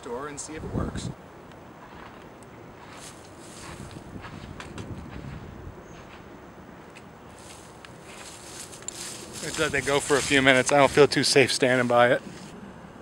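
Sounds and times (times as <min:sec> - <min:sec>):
footsteps in dry leaves: 0:02.8 - 0:06.2, 0:07.3 - 0:12.6
kerosene torch rushing: 0:07.4 - 0:12.6.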